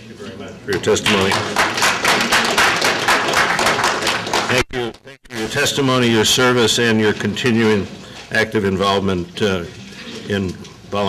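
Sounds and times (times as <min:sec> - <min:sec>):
audience applauding: 0:01.0 - 0:05.1.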